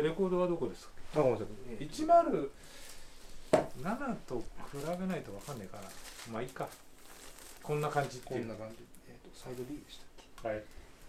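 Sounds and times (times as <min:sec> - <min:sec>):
men speaking: 0:00.0 - 0:02.6, 0:03.6 - 0:06.8, 0:07.6 - 0:10.7.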